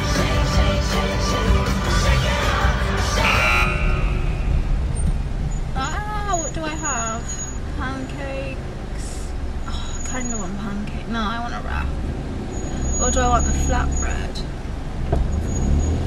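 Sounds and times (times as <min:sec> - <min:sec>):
concert crowd noise: 0:00.0 - 0:04.9
concert music: 0:00.0 - 0:04.9.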